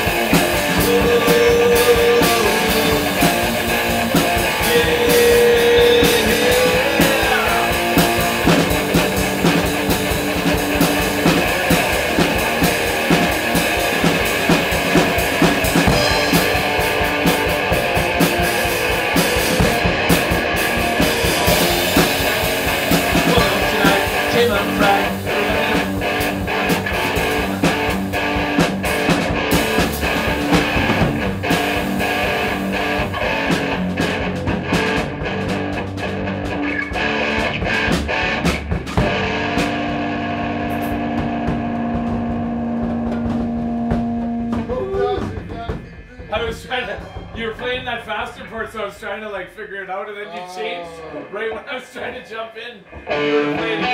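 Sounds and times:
rock guitar playing: 0.0 - 46.4, 52.9 - 53.9
drum kit playing: 0.0 - 49.4, 52.9 - 53.9.

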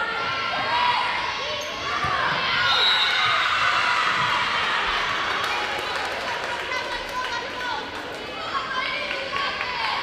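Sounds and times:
cheering and shouting: 0.0 - 10.0.

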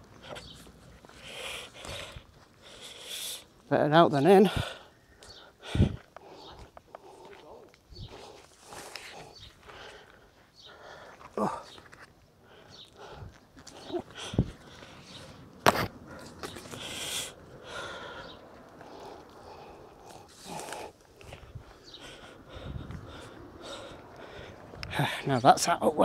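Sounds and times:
sharp crack: 15.6 - 16.9.

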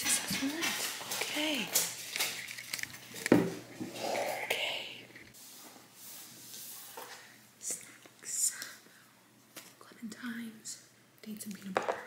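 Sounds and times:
woman whispering: 4.2 - 5.1, 7.6 - 8.8, 9.8 - 11.7.

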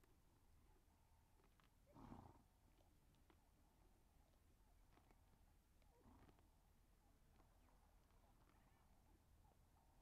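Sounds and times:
faint zebra sound: 0.5 - 10.0.

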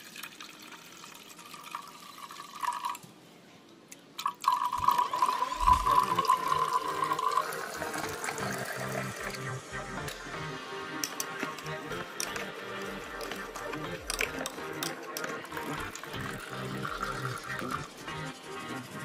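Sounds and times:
water pouring into a glass beaker: 0.0 - 3.0, 4.2 - 10.4, 11.6 - 18.0.

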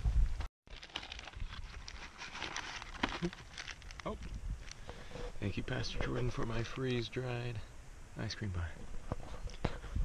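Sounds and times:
plastic packet crinkling: 0.7 - 4.8.

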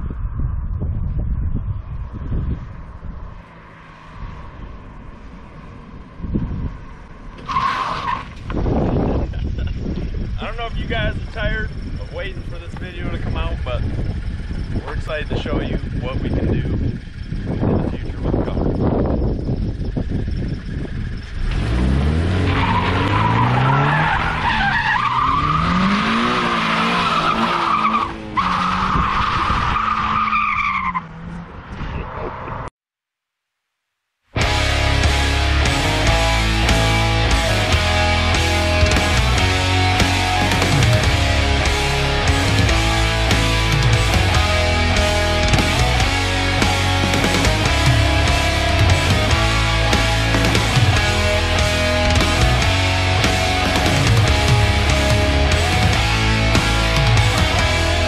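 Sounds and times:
car approaching: 0.0 - 32.7, 34.4 - 58.0
tires squealing: 2.5 - 32.7, 34.4 - 58.0.

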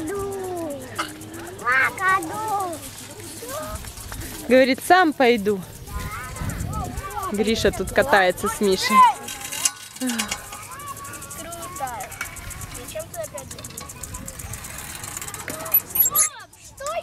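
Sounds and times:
children chattering and calling: 0.0 - 17.0.

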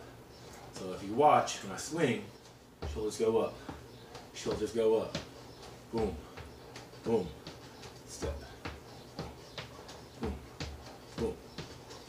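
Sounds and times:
sneakers stepping on wooden floor: 0.5 - 12.0.

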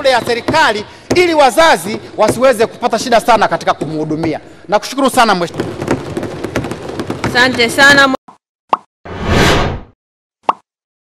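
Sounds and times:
whoosh: 9.1 - 10.0.

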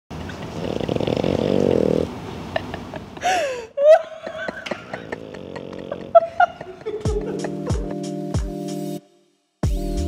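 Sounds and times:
puppy growling: 0.5 - 2.2, 4.8 - 6.4.

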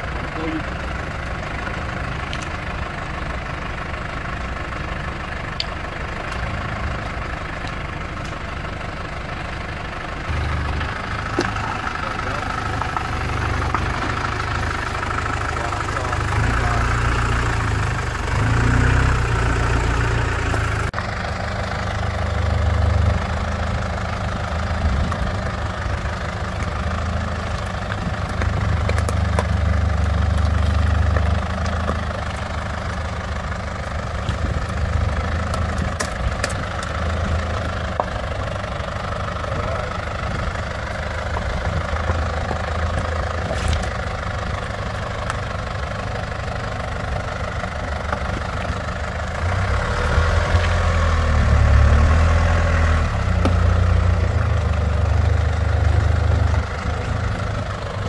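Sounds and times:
engine running at low revs: 0.0 - 58.0.

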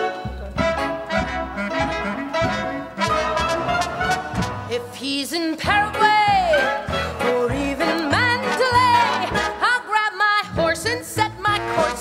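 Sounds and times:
brass-led orchestra dance music: 0.0 - 4.9, 5.8 - 10.1, 11.2 - 12.0.

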